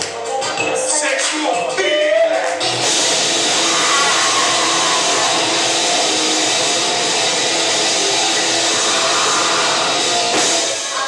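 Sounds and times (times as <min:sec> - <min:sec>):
band playing distorted guitar and drums: 0:00.1 - 0:11.0.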